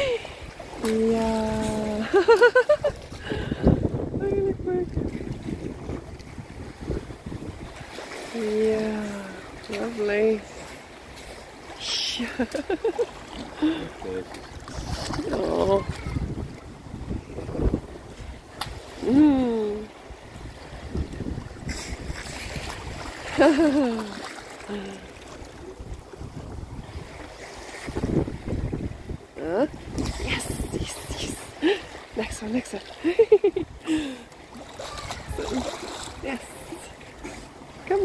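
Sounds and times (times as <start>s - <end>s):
pool water sloshing and splashing: 0.0s - 4.0s, 4.6s - 38.0s
wind buffeting microphone: 0.0s - 8.1s, 13.5s - 23.8s, 25.3s - 31.9s, 34.8s - 36.4s.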